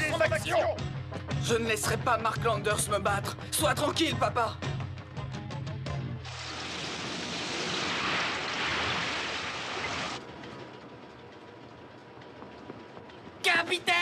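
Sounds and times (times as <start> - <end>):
background music: 0.0 - 7.1, 10.2 - 14.0
driving rain: 6.3 - 10.8.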